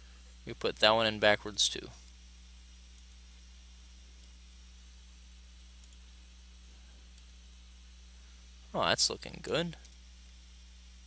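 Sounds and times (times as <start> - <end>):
low electrical hum: 0.0 - 11.0
faint clicks: 4.2 - 4.4, 5.8 - 6.0.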